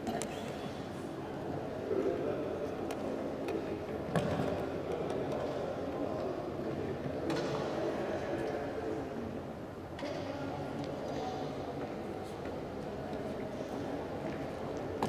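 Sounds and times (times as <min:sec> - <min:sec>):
chatter in a large hall: 0:00.0 - 0:15.0.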